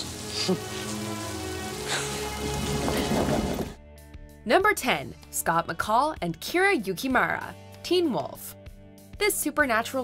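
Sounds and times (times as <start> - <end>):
rain falling: 0.0 - 3.8
background music: 0.0 - 10.0.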